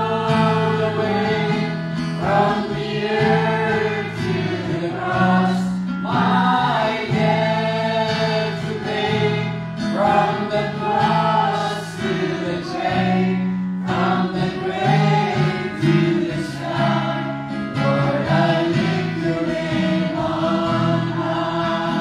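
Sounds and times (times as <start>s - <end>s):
group singing gospel song: 0.0s - 22.0s.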